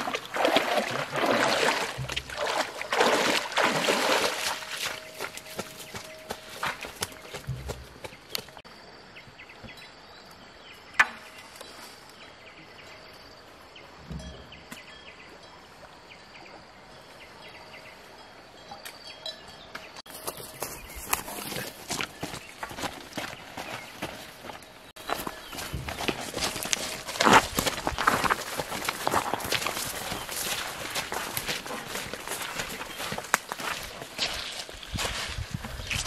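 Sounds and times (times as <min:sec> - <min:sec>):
footsteps rustling through grass: 0:20.1 - 0:36.0.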